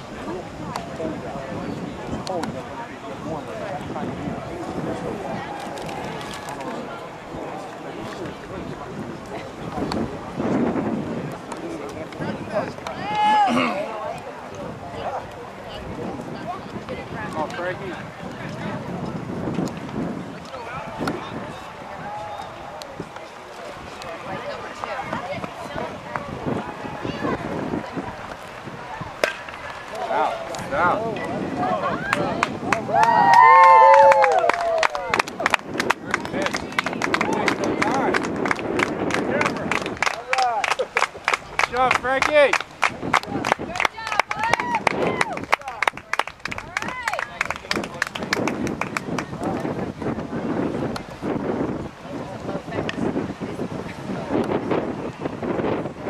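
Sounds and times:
indistinct group talking: 0:00.0 - 0:56.0
low crowd chatter: 0:00.0 - 0:56.0
baseball bat crack: 0:29.2 - 0:30.7.

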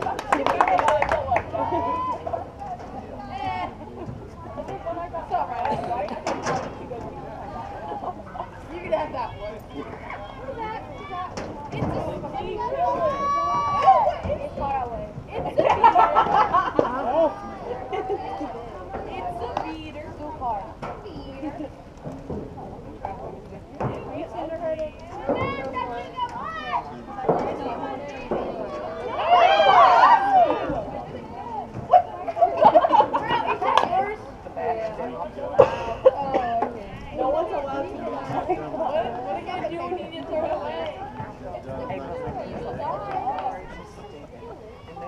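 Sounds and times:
people shouting and cheering: 0:00.0 - 0:19.7, 0:23.8 - 0:35.5
voices talking and calling out: 0:00.0 - 0:45.0.

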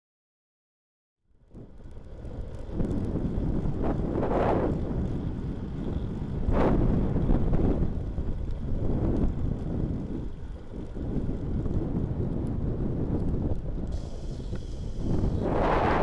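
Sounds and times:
wind buffeting microphone: 0:01.4 - 0:16.0.

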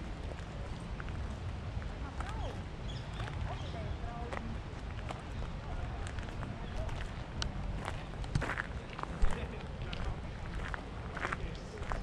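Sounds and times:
wind rumbling on microphone: 0:00.0 - 0:12.0
faint voices: 0:01.8 - 0:12.0
footsteps on gravel: 0:04.3 - 0:12.0.

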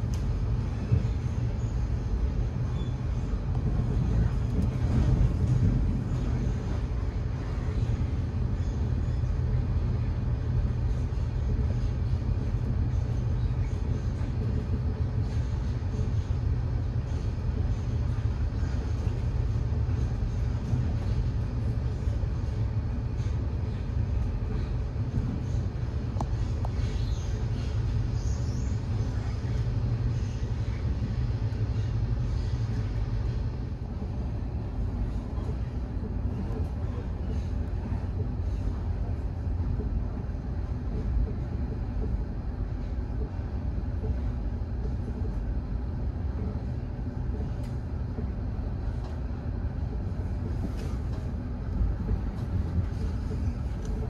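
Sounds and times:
train rumbling: 0:00.0 - 0:54.0.

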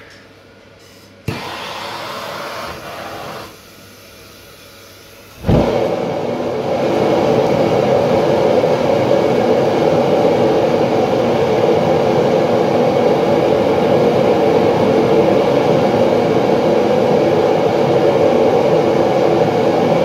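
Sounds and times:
furnace burner roaring: 0:00.0 - 0:20.0.

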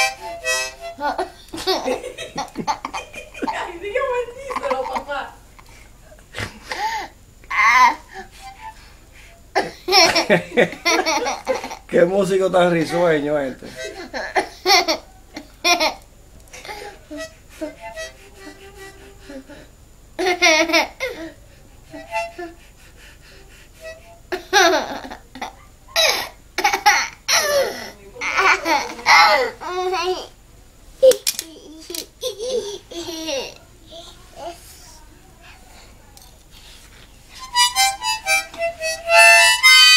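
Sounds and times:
harmonica chords: 0:00.0 - 0:05.5, 0:08.0 - 0:14.4, 0:16.6 - 0:25.2, 0:37.3 - 0:39.9
toddler laughing: 0:01.0 - 0:05.3, 0:06.7 - 0:08.2, 0:09.6 - 0:11.9, 0:20.2 - 0:22.5, 0:24.3 - 0:30.3, 0:31.0 - 0:33.6.

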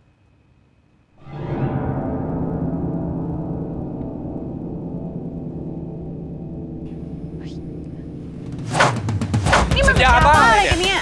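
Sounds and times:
low sustained drone chord: 0:01.2 - 0:08.6
rising swish: 0:07.3 - 0:09.8.

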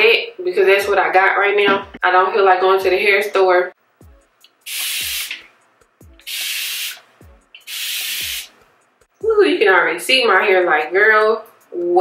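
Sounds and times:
spray bottle hissing sprays: 0:04.6 - 0:05.5, 0:06.2 - 0:08.6.

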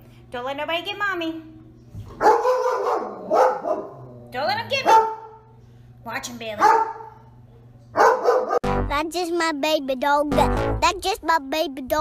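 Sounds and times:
dog barking: 0:02.2 - 0:04.0, 0:04.7 - 0:05.4, 0:06.6 - 0:07.2, 0:08.0 - 0:08.6.

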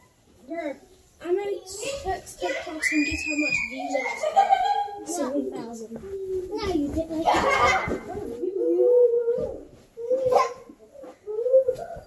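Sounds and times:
child making wordless sounds: 0:00.4 - 0:04.4, 0:05.0 - 0:11.8.

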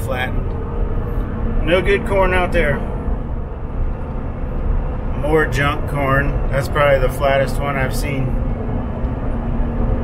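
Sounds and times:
vehicle road and engine rumble: 0:00.0 - 0:10.0.

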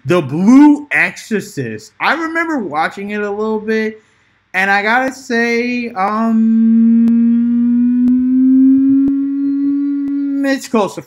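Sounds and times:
man humming hesitantly: 0:06.0 - 0:10.7.

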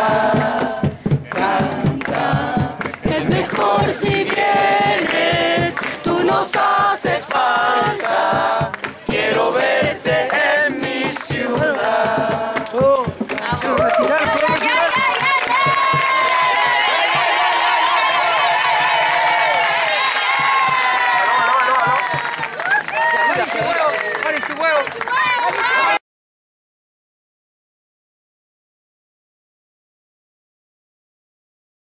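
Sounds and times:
group singing unaccompanied: 0:00.0 - 0:13.8.

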